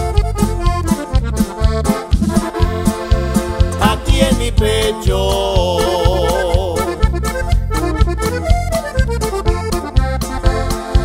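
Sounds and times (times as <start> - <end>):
accordion playing quick notes: 0.0 - 11.0
bass line: 0.0 - 11.0
drums: 0.0 - 11.0.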